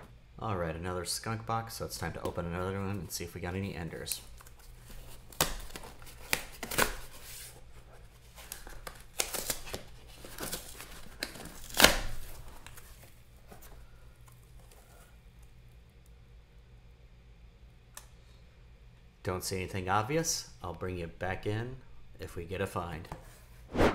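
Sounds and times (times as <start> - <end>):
faint handling sounds: 2.0 - 15.6
cardboard box tearing: 4.9 - 7.5, 8.5 - 12.4.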